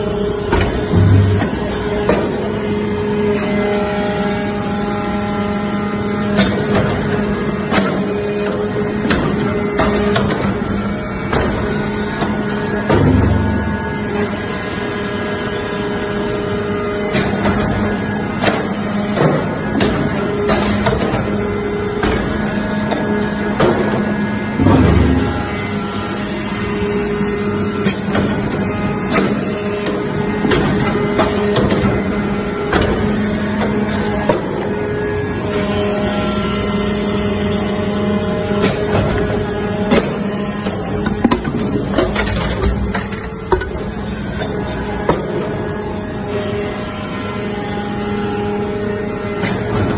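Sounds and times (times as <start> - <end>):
hydraulic unit hum: 0.0 - 49.9
heavy press thumps: 0.5 - 2.3
clicks and clanks: 39.9 - 43.8.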